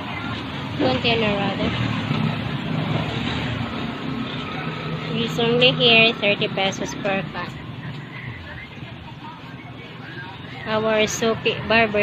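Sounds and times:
road noise: 0.0 - 12.0
vehicle engine hum: 0.0 - 12.0.

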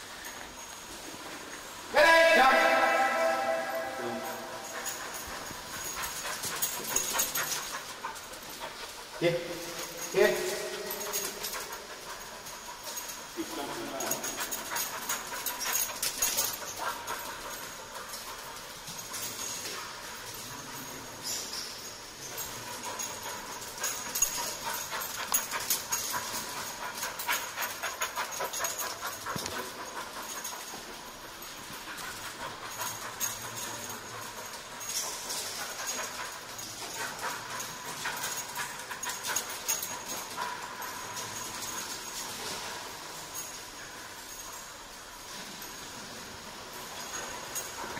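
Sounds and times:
dog panting rapidly: 3.7 - 47.9.

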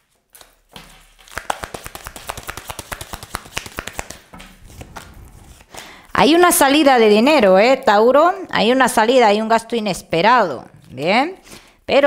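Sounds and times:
cards shuffling and slapping: 0.1 - 5.8.

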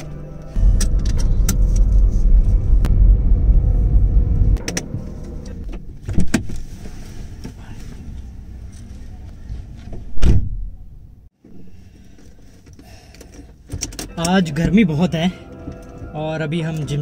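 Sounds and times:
car engine rumbling: 0.0 - 16.0.

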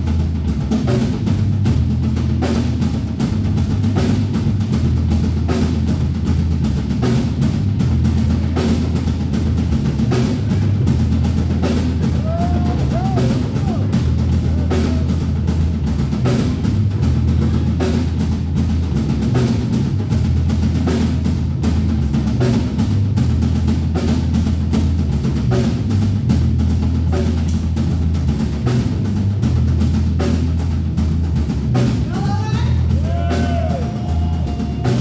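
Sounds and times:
bass line: 0.0 - 35.0
drum kit beat: 0.0 - 35.0.

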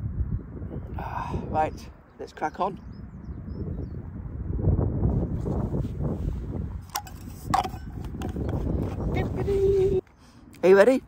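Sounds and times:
wind buffeting microphone: 0.0 - 10.5
flask and cup clicks: 6.9 - 8.6.

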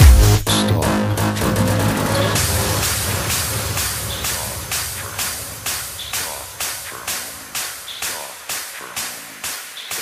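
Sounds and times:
techno music: 0.0 - 10.0.

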